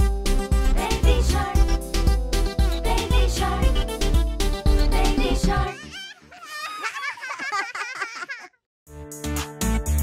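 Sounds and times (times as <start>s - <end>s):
music: 0.0s - 5.9s, 8.9s - 10.0s
baby giggling: 5.6s - 8.6s.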